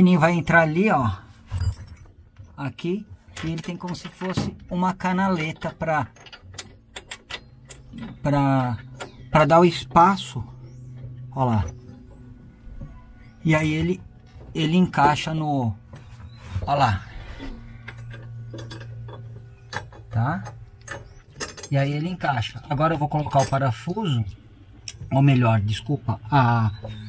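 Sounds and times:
steady low hum: 0.0 - 27.0
light metal clicks: 3.3 - 16.8, 17.4 - 25.2.

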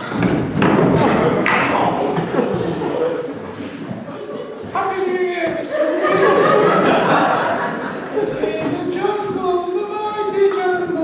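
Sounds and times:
loud continuous voices: 0.0 - 11.0
thud: 0.1 - 2.3.

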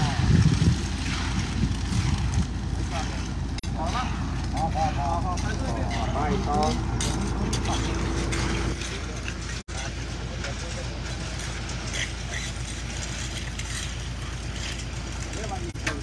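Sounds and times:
diesel engine rumbling: 0.0 - 16.0.

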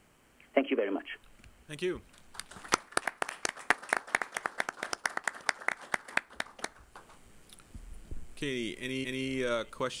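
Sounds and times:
small audience clapping: 2.0 - 7.3.

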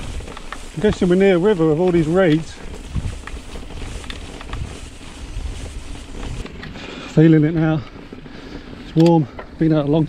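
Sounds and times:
bike clicks and rattles: 0.0 - 10.0
bike tyre rumble: 0.0 - 10.0
wind noise on microphone: 0.0 - 10.0.

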